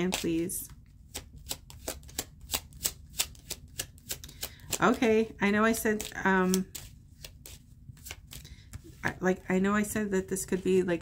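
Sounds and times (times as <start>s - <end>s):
cards being shuffled: 0.0s - 9.1s.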